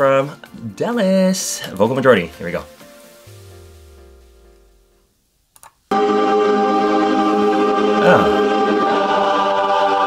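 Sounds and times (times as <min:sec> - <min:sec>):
faint background music: 0:00.0 - 0:05.3, 0:05.9 - 0:10.0
men's chorus singing a cappella: 0:06.0 - 0:10.0.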